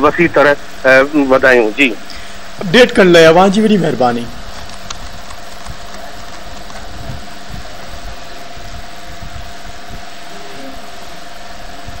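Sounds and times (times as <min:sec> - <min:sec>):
constant hum: 0:00.0 - 0:12.0
even hiss: 0:00.0 - 0:12.0.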